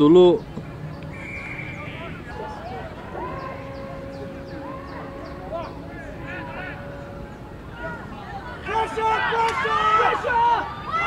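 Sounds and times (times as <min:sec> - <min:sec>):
distant voices shouting: 0:00.0 - 0:11.0
long drawn-out tone: 0:00.8 - 0:08.6.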